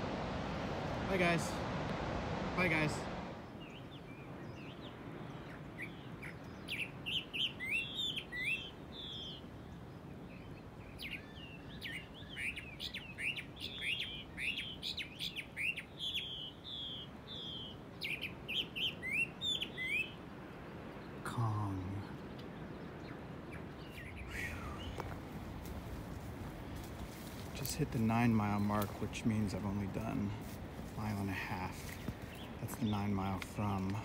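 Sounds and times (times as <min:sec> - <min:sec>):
birds chirping: 0:00.0 - 0:34.0
faint steady hiss: 0:20.3 - 0:34.0.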